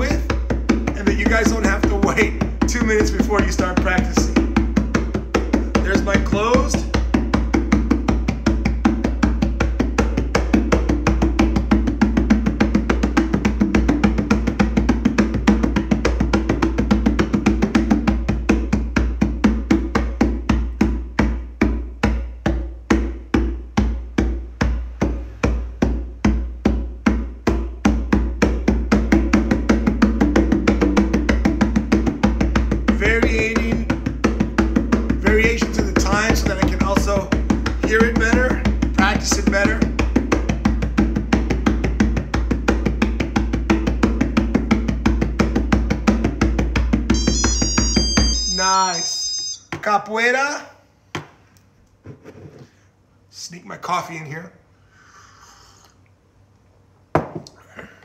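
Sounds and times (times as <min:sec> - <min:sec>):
hand drum played with bare hands: 0:00.0 - 0:49.7.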